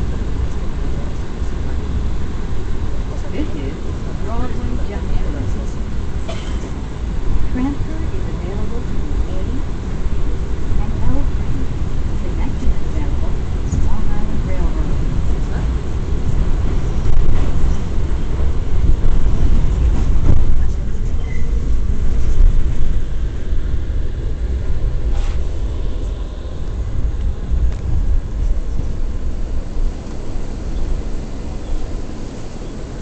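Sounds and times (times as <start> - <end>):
subway car rumbling on track: 0.0 - 33.0.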